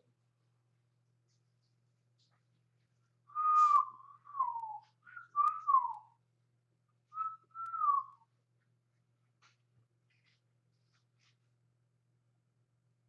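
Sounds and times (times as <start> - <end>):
person whistling a tune: 3.3 - 6.0, 7.1 - 8.2.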